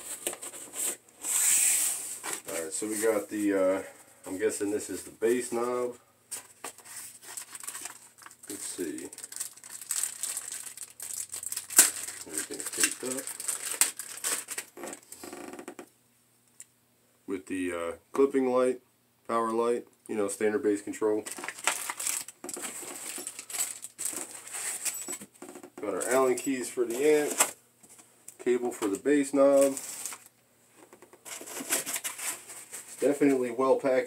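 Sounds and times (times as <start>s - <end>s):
plastic packaging crinkling: 6.4s - 15.2s, 21.2s - 27.6s, 28.8s - 33.4s.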